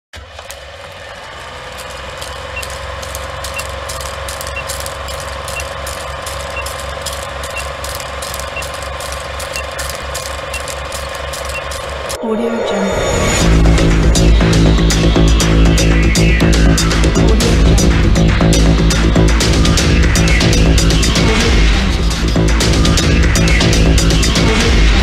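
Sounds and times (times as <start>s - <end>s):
film projector clatter: 0.2s - 12.2s.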